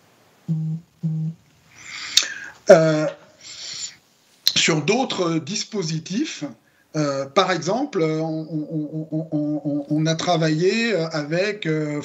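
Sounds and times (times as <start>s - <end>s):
man making hesitation sounds: 0.5s - 1.4s, 2.0s - 3.9s, 7.0s - 12.0s.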